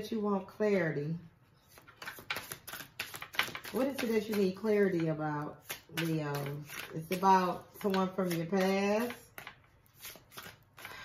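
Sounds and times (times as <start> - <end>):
cards being shuffled: 1.7 - 11.0.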